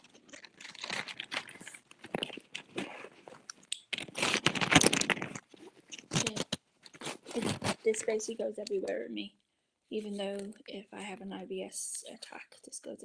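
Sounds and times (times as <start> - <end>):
packets crinkling: 0.0 - 8.0.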